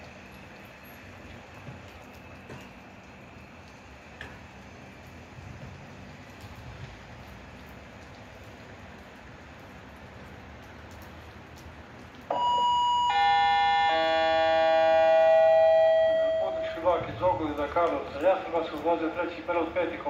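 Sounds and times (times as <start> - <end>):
low station background: 11.9 - 20.0.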